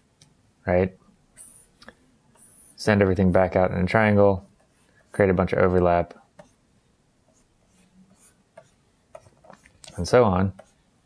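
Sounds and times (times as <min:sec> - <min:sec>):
stylus scratching on tablet: 0:01.4 - 0:11.0.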